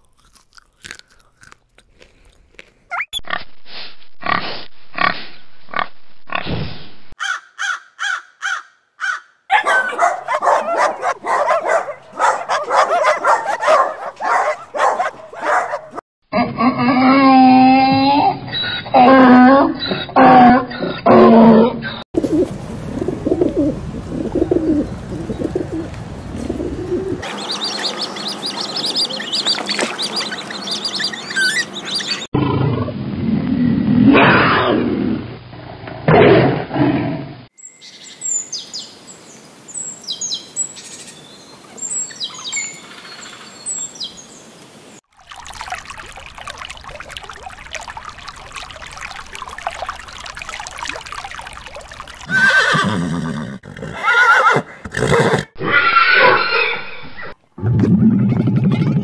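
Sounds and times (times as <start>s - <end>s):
donkey braying: 8.1s - 22.0s, 26.9s - 32.3s, 51.8s - 56.8s
bird chirping: 27.2s - 32.3s, 37.6s - 44.4s.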